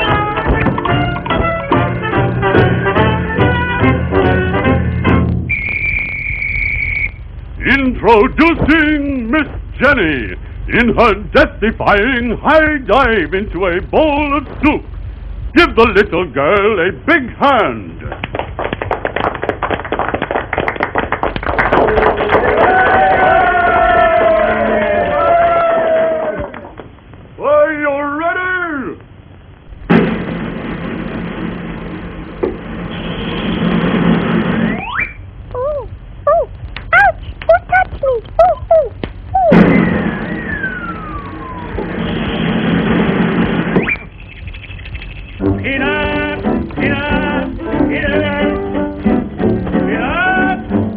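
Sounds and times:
band music with strings: 0.0 - 5.5, 45.4 - 50.9
quick rising whistle: 5.5 - 7.2
long falling whistle: 5.5 - 7.3, 39.4 - 42.3
crowd applauding: 18.1 - 26.8
rushing noise: 29.5 - 36.2, 39.2 - 50.9.

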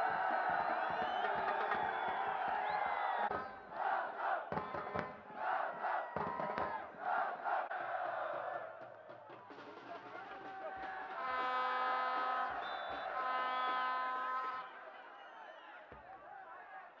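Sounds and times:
supporters chanting in rhythm: 0.0 - 9.1
stadium crowd cheering: 0.0 - 17.0.

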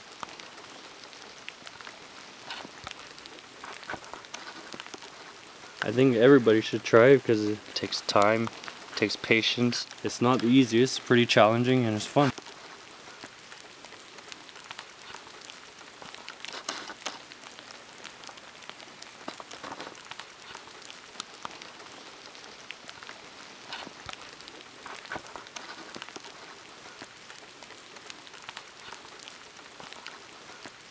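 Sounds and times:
rain on wet pavement: 0.0 - 30.9.

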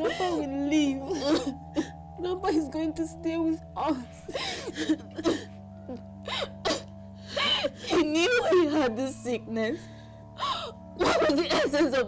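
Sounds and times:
women sobbing and wailing: 0.0 - 3.0, 4.1 - 9.2, 10.2 - 12.0
sustained music: 0.0 - 12.0.

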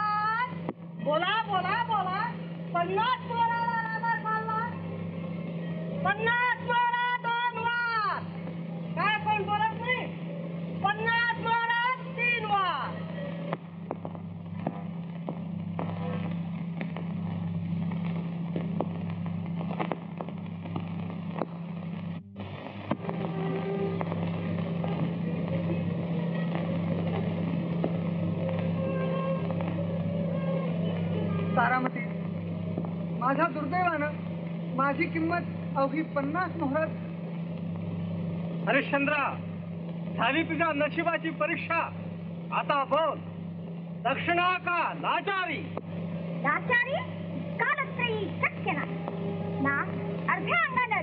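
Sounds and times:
low soundtrack hum: 0.0 - 51.0.

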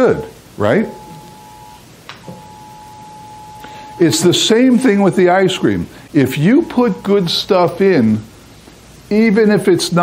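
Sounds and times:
steady single-pitched tone: 0.9 - 4.4.

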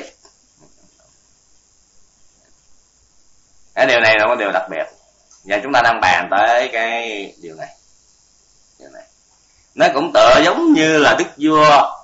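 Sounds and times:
man speaking: 0.0 - 0.2, 3.8 - 7.8, 8.8 - 9.1, 9.8 - 12.0
faint recording hiss: 0.0 - 12.0.

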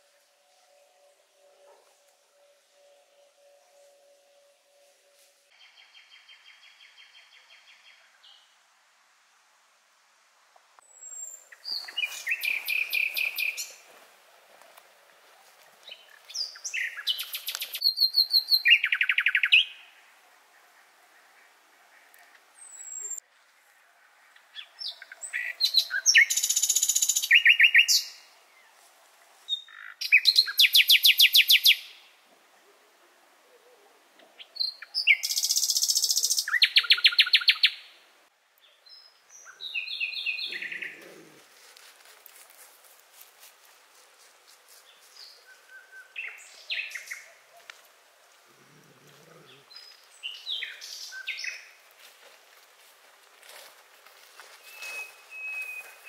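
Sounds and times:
songbird singing: 0.0 - 8.6, 10.8 - 41.6, 44.7 - 52.0, 54.3 - 56.0.

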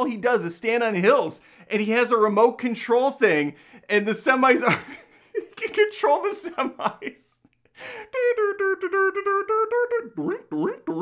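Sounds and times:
man vocalizing short notes: 8.0 - 11.0.

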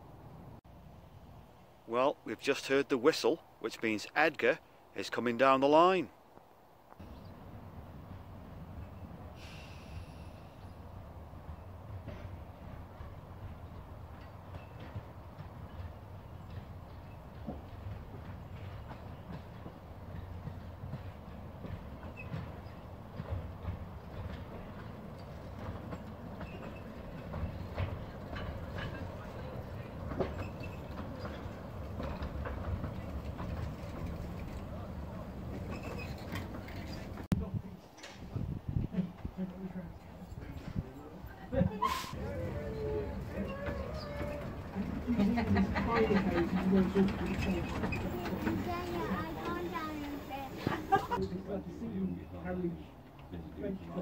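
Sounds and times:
wheels clicking over rail joints: 6.9 - 37.4, 41.8 - 52.1
steam locomotive passing: 7.0 - 37.3, 39.0 - 54.0.

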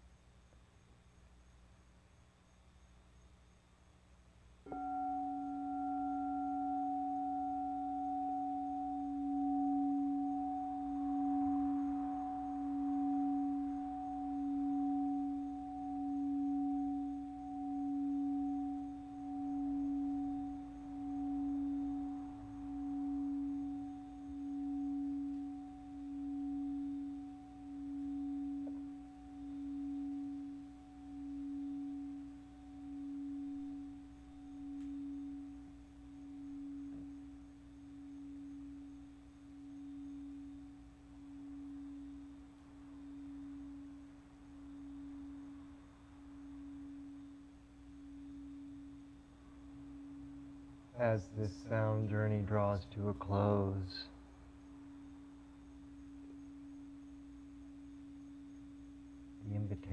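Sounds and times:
singing bowl ringing: 4.6 - 59.9.

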